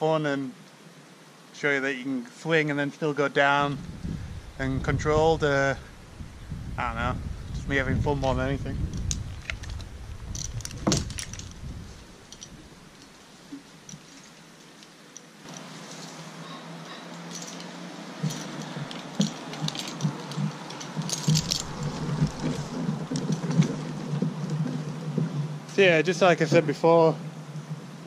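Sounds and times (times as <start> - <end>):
metal climbing hardware clinking: 8.2 - 13.2, 13.8 - 24.8.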